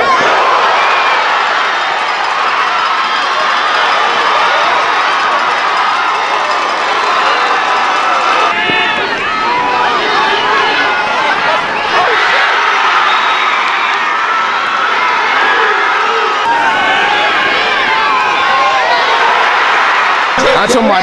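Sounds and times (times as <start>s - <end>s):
crowd cheering and shouting: 0.0s - 21.0s.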